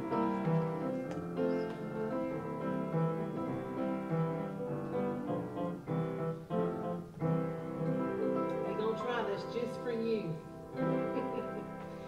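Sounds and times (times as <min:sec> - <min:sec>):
piano playing hymn chords: 0:00.0 - 0:12.0.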